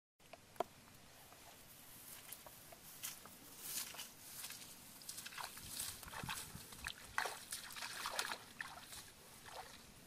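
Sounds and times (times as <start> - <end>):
bare feet swishing through wet grass: 1.6 - 10.0
water squelching and splashing underfoot: 3.6 - 10.0.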